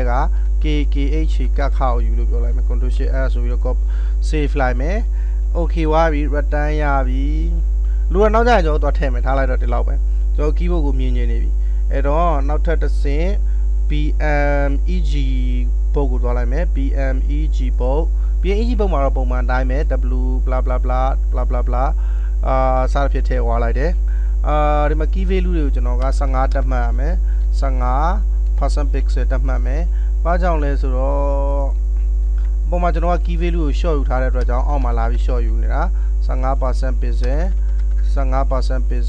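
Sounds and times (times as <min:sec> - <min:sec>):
man talking: 0:00.0 - 0:31.8, 0:32.7 - 0:39.0
electrical mains hum: 0:00.0 - 0:39.0
person speaking: 0:00.0 - 0:39.0.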